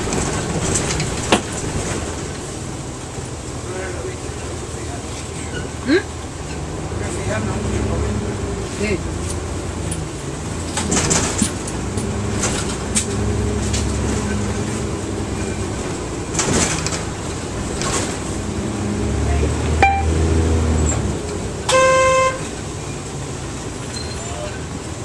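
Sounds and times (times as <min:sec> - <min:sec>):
bus engine and drivetrain hum: 0:00.0 - 0:25.0.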